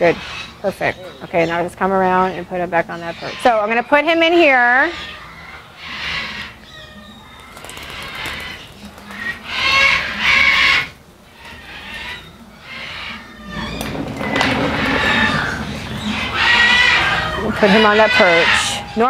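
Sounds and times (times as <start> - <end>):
parrot growling calls: 4.6 - 19.0.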